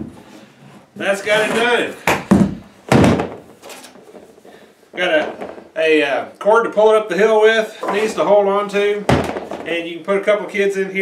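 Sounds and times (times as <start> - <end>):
sled thudding on wooden workbench: 1.3 - 3.6, 8.9 - 9.8.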